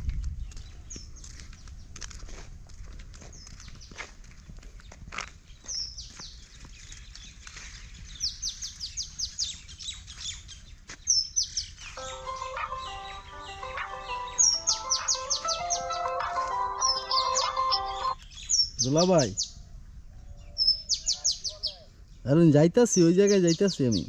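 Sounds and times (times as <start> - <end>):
birds chirping: 4.8 - 19.6, 20.4 - 24.0
melody of held notes: 12.0 - 18.2.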